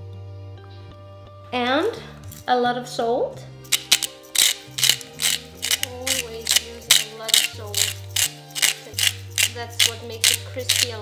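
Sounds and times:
salt mill grinding: 3.7 - 11.0.

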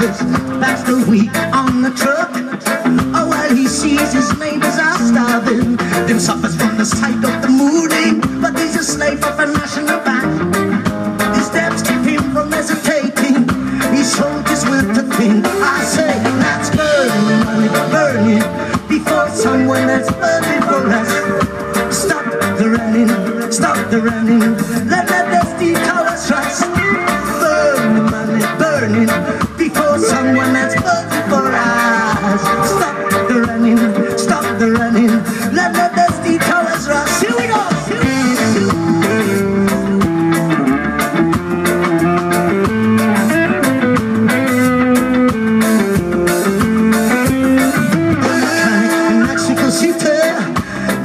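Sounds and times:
person singing: 0.0 - 10.6, 11.3 - 40.9, 47.6 - 51.0
bass: 0.0 - 51.0
drum kit: 0.0 - 51.0
electric guitar holding long notes: 0.0 - 51.0
keyboard: 0.0 - 51.0
live reggae band playing: 0.0 - 51.0.

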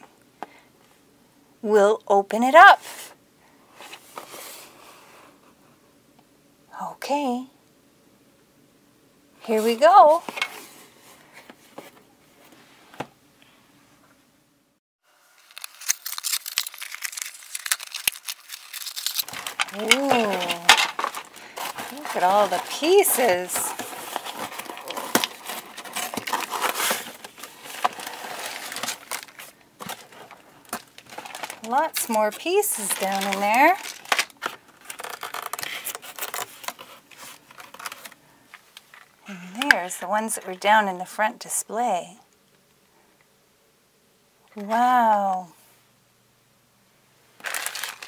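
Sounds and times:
cardboard box tearing: 15.5 - 30.2, 32.8 - 38.1.

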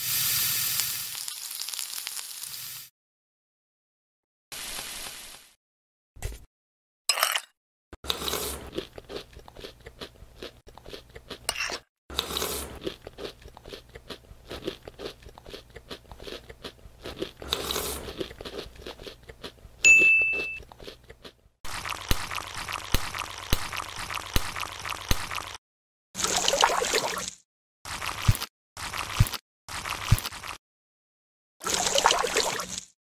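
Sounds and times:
crunchy chewing: 8.0 - 19.7, 20.6 - 25.4, 27.9 - 30.6
short high ding: 19.9 - 20.6.

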